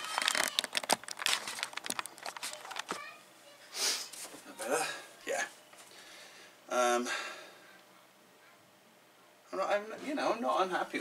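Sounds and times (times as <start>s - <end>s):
rustling: 0.0s - 3.2s.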